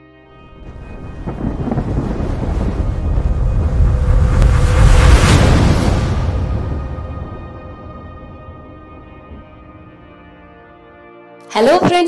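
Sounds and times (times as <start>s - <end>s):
low thunder-like rumbling: 0.4s - 10.8s.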